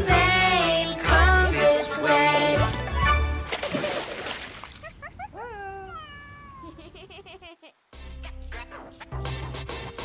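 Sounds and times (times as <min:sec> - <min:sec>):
cartoon cat meowing: 0:05.4 - 0:06.7.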